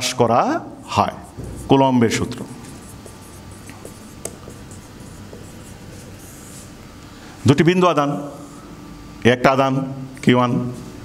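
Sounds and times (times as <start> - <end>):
marker writing on whiteboard: 1.0 - 6.8.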